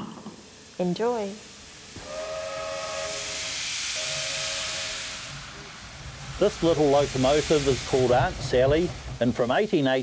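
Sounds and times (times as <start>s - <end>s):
steam hissing: 0.0s - 10.0s
steady whistle tone: 2.0s - 5.7s.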